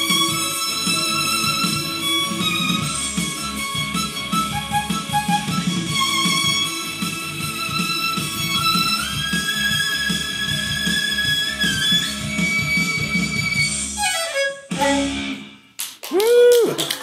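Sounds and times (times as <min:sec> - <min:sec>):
solo violin playing: 0:00.0 - 0:15.4
people clapping: 0:15.7 - 0:17.0.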